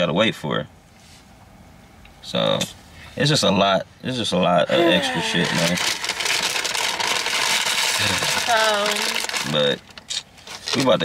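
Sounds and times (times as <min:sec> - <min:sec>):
paper bag rustling: 0:05.2 - 0:11.0.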